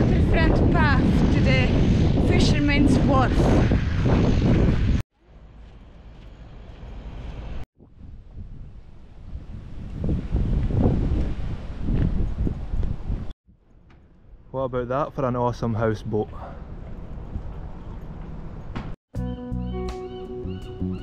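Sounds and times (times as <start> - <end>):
wind buffeting microphone: 0.0 - 5.0, 7.8 - 13.4, 15.9 - 19.0.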